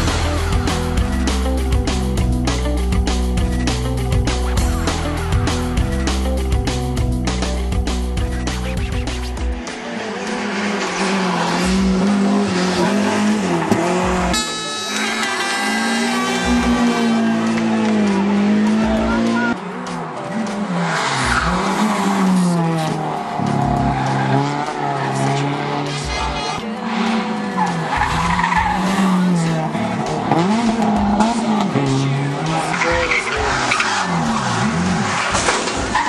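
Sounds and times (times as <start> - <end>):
race car engines revving: 7.3 - 36.0
tyres squealing and skidding: 8.6 - 17.8, 20.6 - 36.0.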